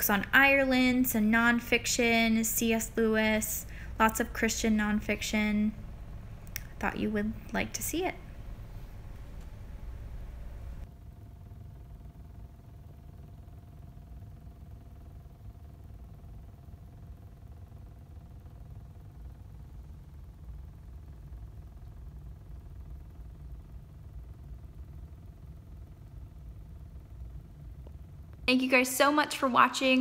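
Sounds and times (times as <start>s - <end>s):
faint steady hum: 0.0s - 30.0s
low steady rumble: 0.0s - 30.0s.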